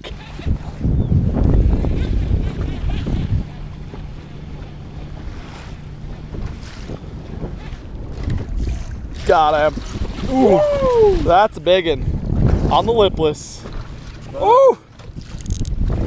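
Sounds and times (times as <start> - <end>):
water slapping boat hull: 0.0 - 16.0
wind buffeting microphone: 0.0 - 16.0.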